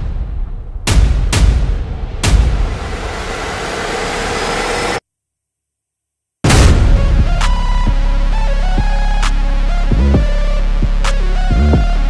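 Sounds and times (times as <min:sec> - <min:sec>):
noise riser in music: 0:01.8 - 0:05.0.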